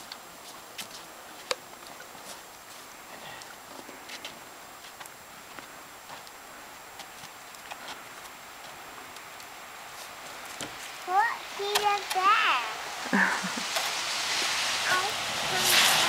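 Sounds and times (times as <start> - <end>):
footsteps crunching on snow: 0.0 - 12.3
steady background hiss: 0.0 - 16.0.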